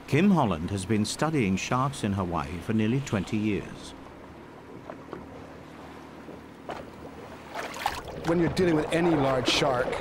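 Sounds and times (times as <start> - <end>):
wind and water wash: 0.0 - 10.0.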